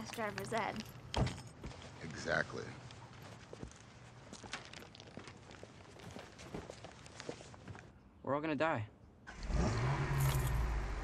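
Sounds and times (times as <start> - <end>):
faint footsteps: 0.0 - 7.9.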